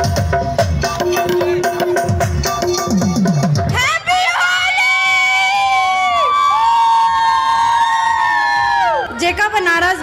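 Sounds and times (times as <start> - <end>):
girls cheering: 3.8 - 9.3.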